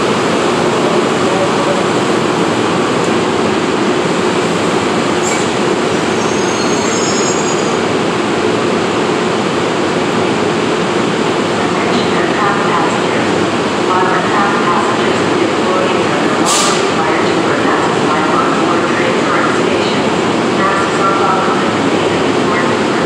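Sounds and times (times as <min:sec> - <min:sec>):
faint high wheel squeal: 0:06.2 - 0:07.8.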